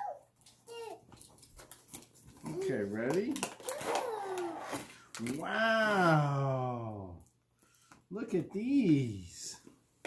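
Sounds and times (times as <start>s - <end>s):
toddler vocal sound: 0.0s - 1.1s, 3.6s - 6.8s.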